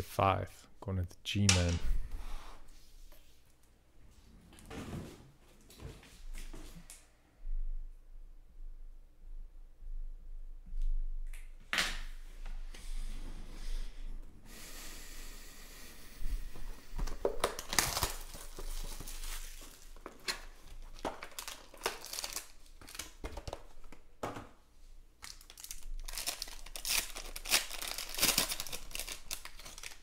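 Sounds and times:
foil pack crinkling and tearing: 17.2 - 23.9, 25.2 - 30.0.

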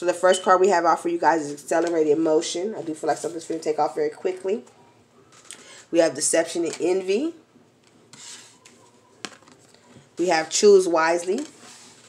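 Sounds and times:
card sliding across table: 8.1 - 8.7.

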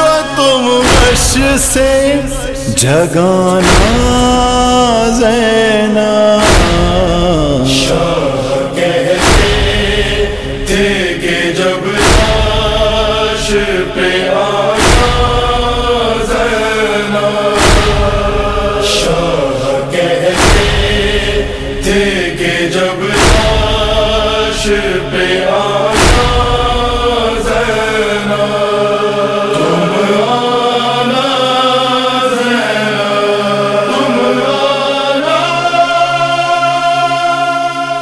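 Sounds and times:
heavy deep beat: 0.0 - 28.2
men chanting mournful melody: 0.0 - 38.0.

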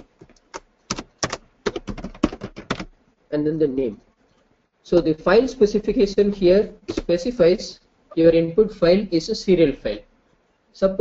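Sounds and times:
computer keyboard typing: 0.0 - 3.0.

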